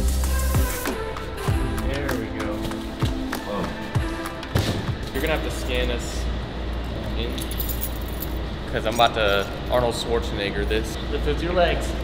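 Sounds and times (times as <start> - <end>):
steady low hum: 0.0 - 12.0
keys jangling: 7.1 - 9.6.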